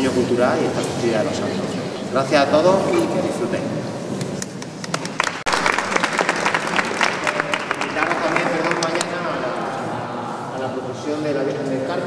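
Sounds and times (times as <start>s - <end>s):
audience applauding: 4.7s - 9.7s
murmuring voices: 6.6s - 12.0s.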